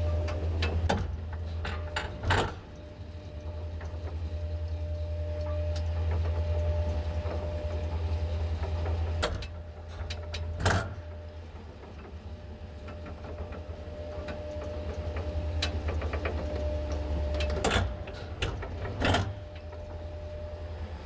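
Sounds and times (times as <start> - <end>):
elevator hum and whine: 0.0 - 21.0.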